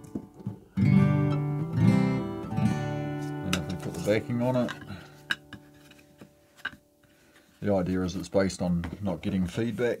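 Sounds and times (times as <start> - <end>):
guitar handling clicks and taps: 0.0 - 1.8, 2.5 - 6.8
acoustic guitar strings ringing: 0.8 - 5.9.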